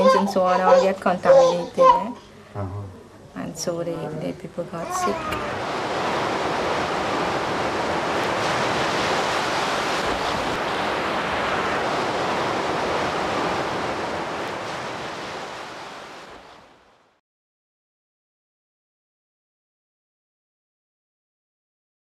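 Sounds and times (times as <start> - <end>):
sea surf rushing: 4.9 - 17.2.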